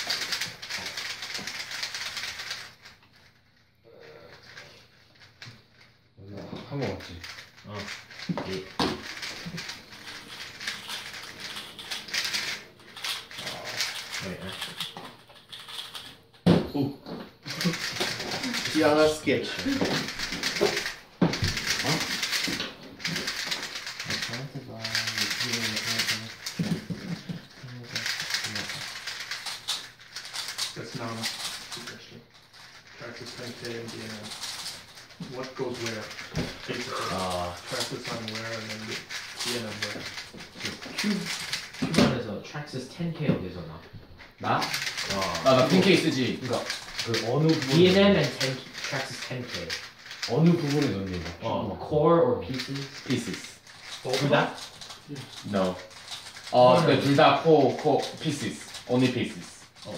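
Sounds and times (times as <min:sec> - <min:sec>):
plastic puzzle cubes clicking: 0:00.0 - 0:02.8, 0:07.2 - 0:16.1, 0:17.5 - 0:42.1, 0:44.4 - 0:51.4, 0:52.5 - 0:59.9.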